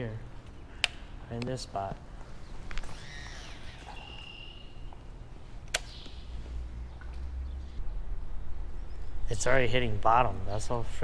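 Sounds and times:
reel spool whining: 2.8s - 5.0s.

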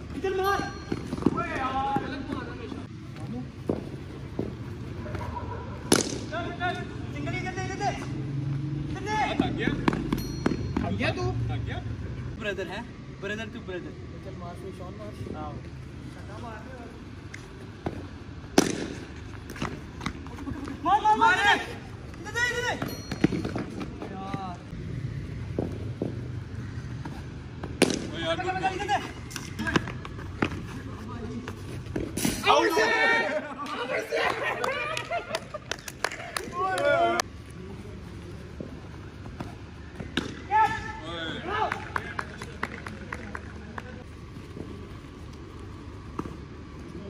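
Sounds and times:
cricket bat striking ball: 5.9s - 6.3s, 17.8s - 19.6s, 27.6s - 28.2s, 40.0s - 40.8s
players shouting: 20.4s - 23.0s, 32.3s - 35.2s, 36.1s - 37.4s, 39.4s - 42.6s
people shouting: 32.4s - 35.0s, 40.4s - 42.0s.

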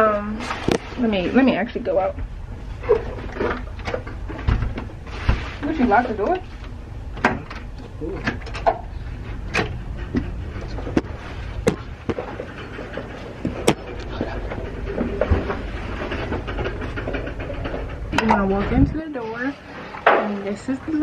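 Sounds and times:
steady low rumble: 0.0s - 21.0s
sharp clicks and knocks: 6.6s - 19.0s.

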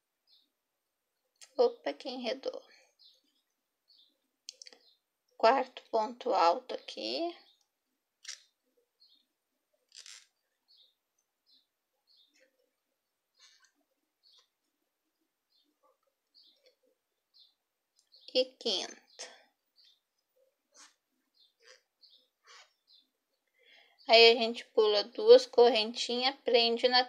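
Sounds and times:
crochet hook squeaking: 8.2s - 8.6s, 9.9s - 10.4s, 20.7s - 23.0s.

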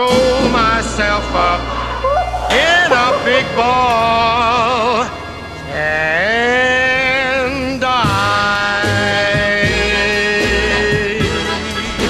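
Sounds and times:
man singing long note: 0.0s - 11.3s
backing band: 0.0s - 12.0s.

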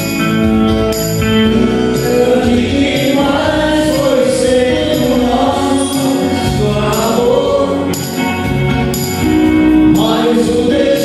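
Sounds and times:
electric guitar: 0.0s - 11.0s
steady bass: 0.0s - 11.0s
men singing together: 1.8s - 8.2s, 9.8s - 11.0s.

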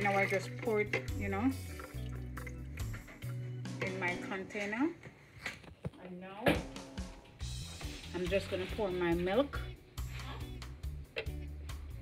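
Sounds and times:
thick juice being poured: 0.0s - 3.4s
music with low bass line: 6.8s - 12.0s.

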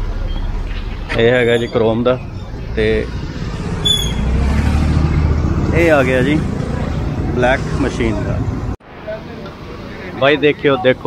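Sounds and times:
vehicle engine running: 0.0s - 8.8s
street noise: 0.0s - 11.0s.

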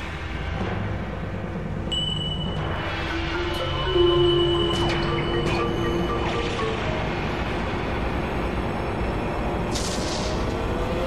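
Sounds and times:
faint music: 0.0s - 9.8s.

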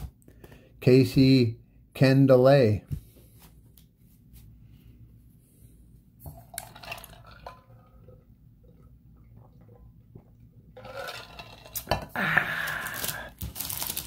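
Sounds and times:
cardboard cards rustling: 12.7s - 14.0s.

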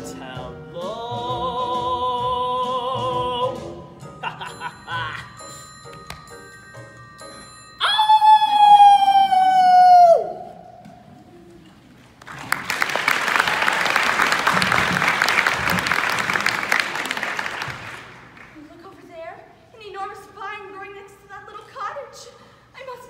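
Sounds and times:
applause: 12.2s - 18.6s.

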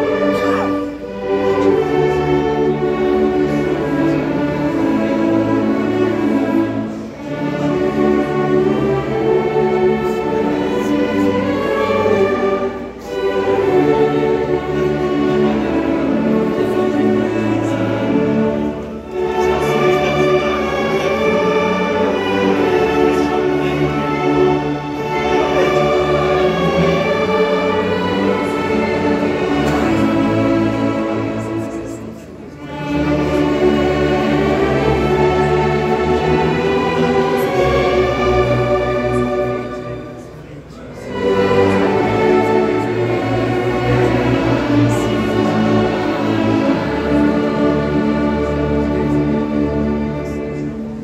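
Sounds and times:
church orchestra playing: 0.0s - 51.0s
congregation singing a hymn: 0.0s - 51.0s.

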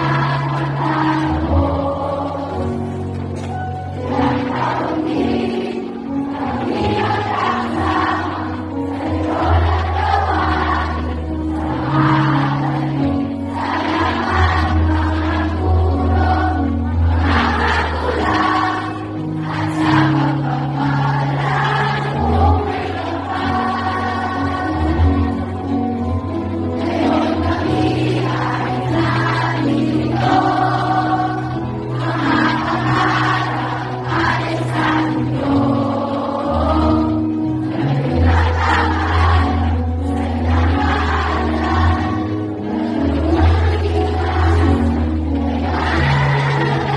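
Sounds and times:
choir song in large hall: 0.0s - 46.9s.

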